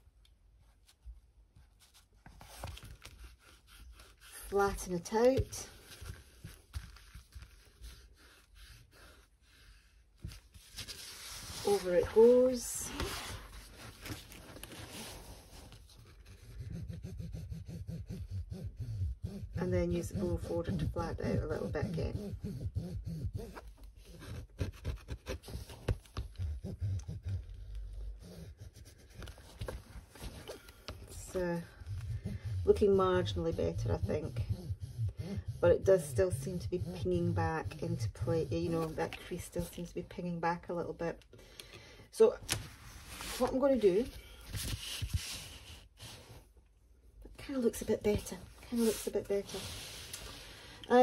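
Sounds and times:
fingertips brushing paper: 0:01.8 - 0:39.9
plastic tool scraping canvas: 0:19.5 - 0:39.9.

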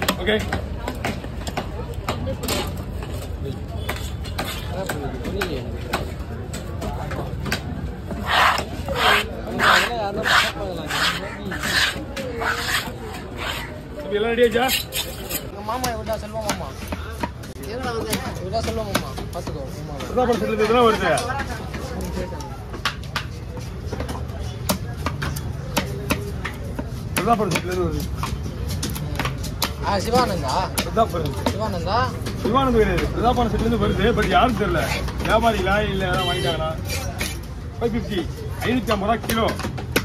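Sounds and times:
people talking: 0:00.0 - 0:22.7
knife chopping on wooden block: 0:07.4 - 0:13.7.

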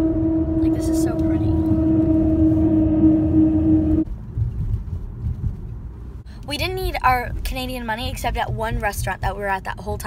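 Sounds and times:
low road rumble: 0:00.0 - 0:10.0.

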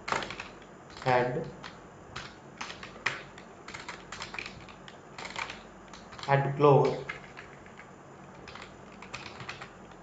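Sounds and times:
computer keyboard keystrokes: 0:00.0 - 0:10.0.

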